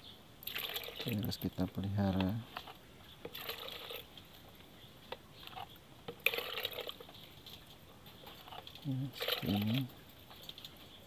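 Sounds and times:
dipper splashing water: 0.4s - 1.6s, 3.3s - 4.0s, 6.2s - 7.0s, 9.1s - 10.7s.

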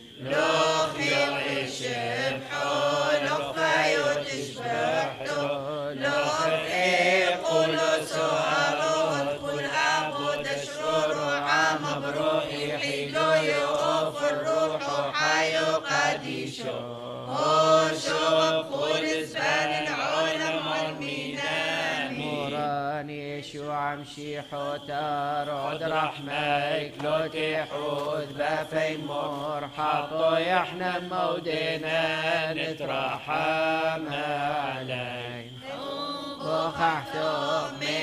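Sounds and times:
voices singing liturgical chant: 0.0s - 38.0s.

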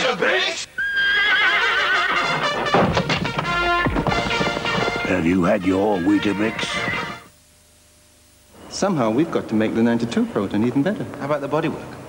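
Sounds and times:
horse whinnying: 0.8s - 7.3s
music: 1.6s - 7.3s.

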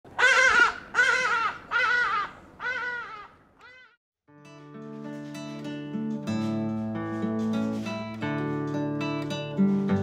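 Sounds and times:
ibis honking calls: 0.2s - 4.0s.

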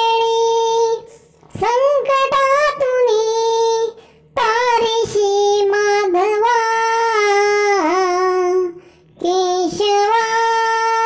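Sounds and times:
child singing a prayer: 0.0s - 11.0s.

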